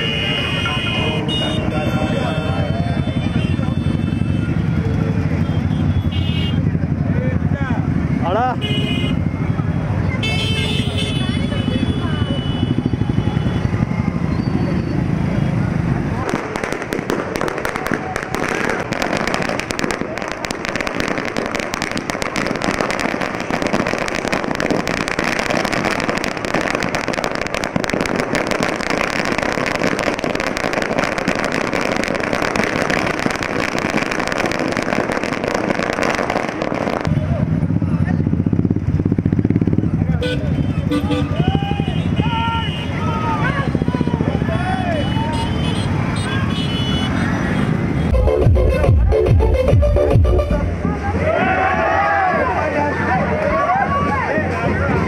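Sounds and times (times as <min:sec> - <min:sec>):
firecrackers crackling: 0:00.0 - 0:55.0
motorcycle engines humming: 0:00.0 - 0:55.0.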